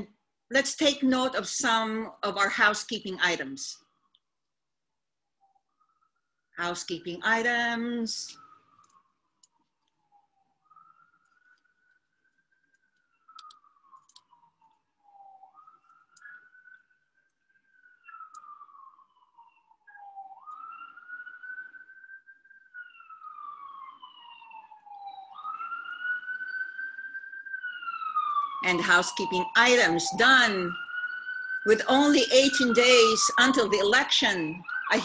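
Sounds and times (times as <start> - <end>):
ambulance siren wailing: 0.0 - 4.2, 5.5 - 35.0.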